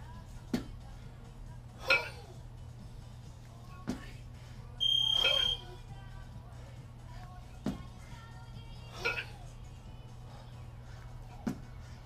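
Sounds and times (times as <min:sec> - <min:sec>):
loud electronic beep: 0:04.8 - 0:05.7.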